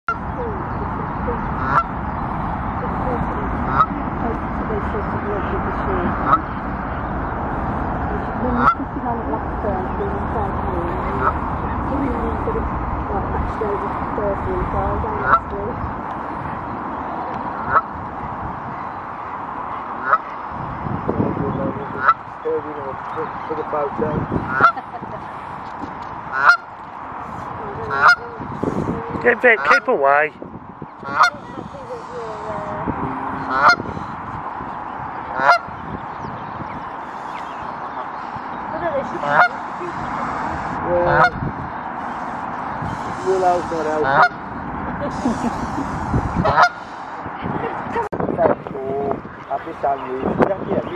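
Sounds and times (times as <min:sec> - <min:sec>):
outdoor background noise: 0:00.0 - 0:50.9
goose honking: 0:00.1 - 0:02.0, 0:02.9 - 0:06.6, 0:08.2 - 0:12.6, 0:13.2 - 0:15.7, 0:17.6 - 0:17.9, 0:20.0 - 0:20.5, 0:21.8 - 0:23.7, 0:24.4 - 0:25.6, 0:26.2 - 0:30.1, 0:31.0 - 0:34.4, 0:35.3 - 0:35.8, 0:37.0 - 0:44.5, 0:45.1 - 0:47.2
steady background noise: 0:00.1 - 0:50.9.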